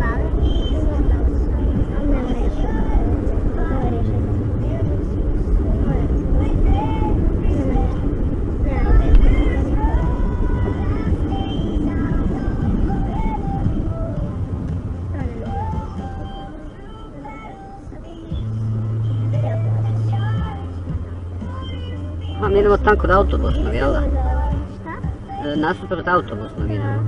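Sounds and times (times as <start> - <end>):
people talking: 0.0 - 13.9, 15.1 - 18.5, 19.2 - 27.0
car driving rumble: 0.0 - 27.0.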